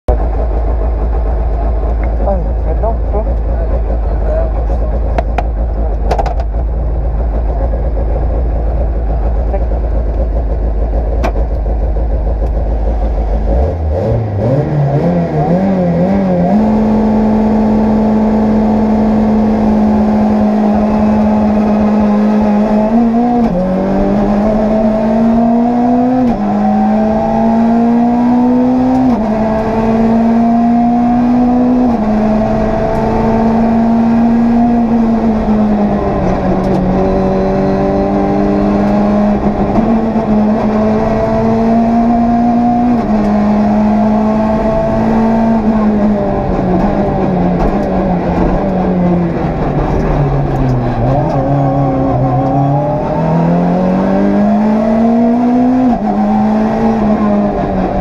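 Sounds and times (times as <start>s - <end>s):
rally car engine revving: 0.1s - 58.0s
car accelerating through gears: 13.4s - 58.0s.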